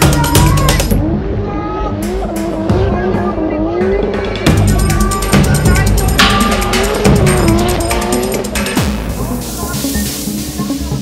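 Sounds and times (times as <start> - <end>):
car engine revving: 0.0 - 10.4
background music with beat: 0.0 - 11.0.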